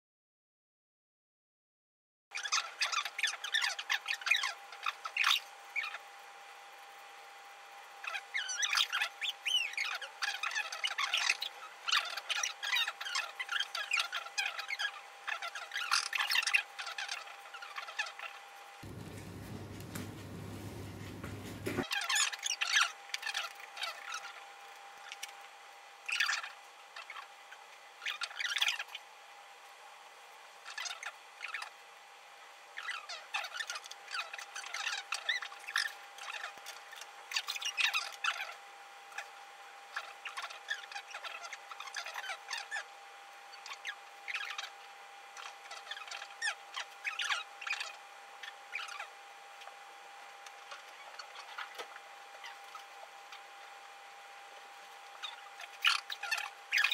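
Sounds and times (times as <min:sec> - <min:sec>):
faint high hum: 0:02.4 - 0:56.9.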